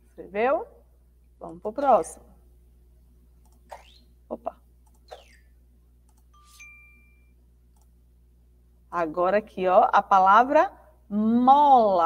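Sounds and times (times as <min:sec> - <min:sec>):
two-note chime: 0:06.4 - 0:07.3.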